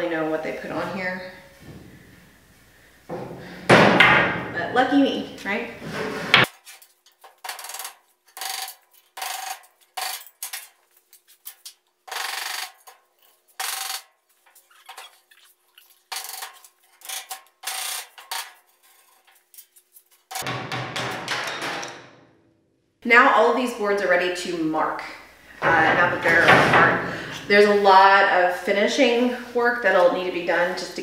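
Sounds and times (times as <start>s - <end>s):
hand tool scraping wooden boards: 5.8s - 20.5s.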